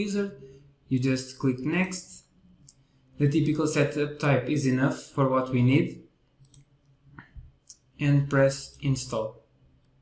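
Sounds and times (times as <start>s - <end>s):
computer mouse clicks: 6.4s - 7.4s.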